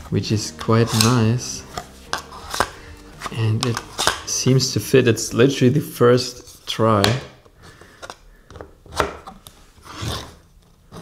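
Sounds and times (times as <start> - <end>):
plastic card holder scraping on wood: 0.6 - 4.3.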